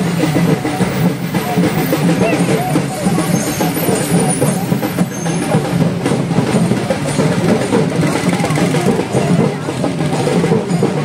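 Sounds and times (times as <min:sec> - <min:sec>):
many voices: 0:00.0 - 0:11.0
procession drumming: 0:00.0 - 0:11.0.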